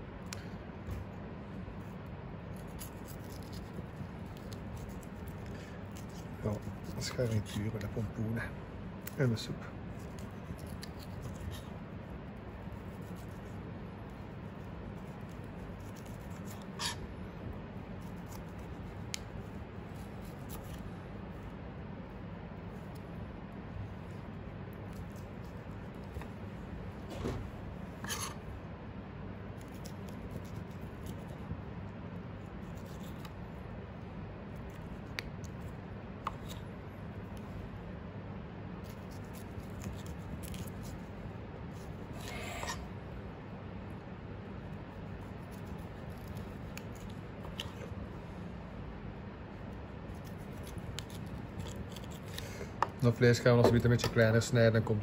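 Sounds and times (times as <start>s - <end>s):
steady background noise: 0.0s - 55.0s
knife cutting and scraping meat: 1.8s - 8.1s, 9.9s - 17.1s, 17.8s - 21.4s, 24.0s - 26.5s, 27.3s - 28.5s, 29.5s - 31.5s, 32.4s - 33.4s, 38.8s - 43.0s, 44.7s - 48.0s, 50.0s - 52.8s.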